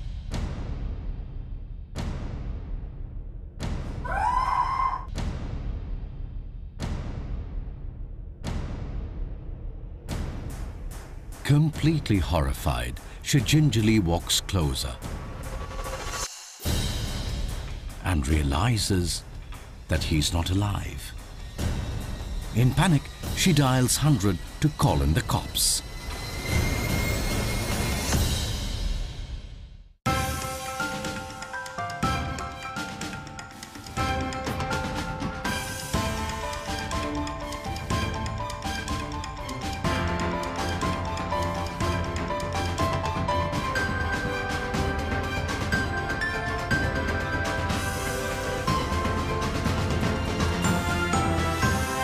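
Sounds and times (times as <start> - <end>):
woman screaming: 4.0 - 5.1.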